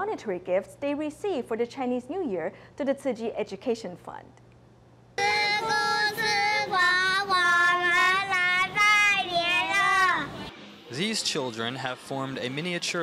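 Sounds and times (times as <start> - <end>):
child singing slow melody: 5.2 - 10.5.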